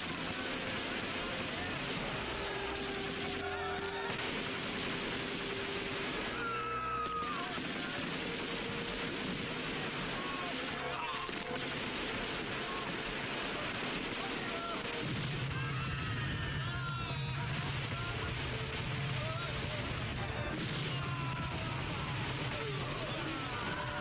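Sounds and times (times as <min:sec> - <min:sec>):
explosions: 0:00.0 - 0:24.0
rifle fire: 0:00.0 - 0:24.0
men shouting: 0:19.4 - 0:24.0.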